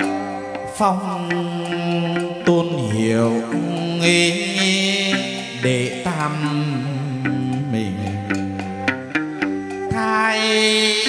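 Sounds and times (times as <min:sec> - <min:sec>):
percussion: 0:00.0 - 0:11.0
plucked string accompaniment: 0:00.0 - 0:11.0
ritual singing with long held notes: 0:00.0 - 0:11.0.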